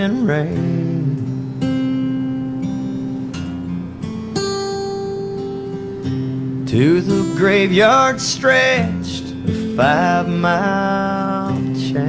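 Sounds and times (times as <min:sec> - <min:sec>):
person singing: 0:00.0 - 0:01.4, 0:06.7 - 0:12.0
acoustic guitar strumming chords: 0:00.0 - 0:12.0.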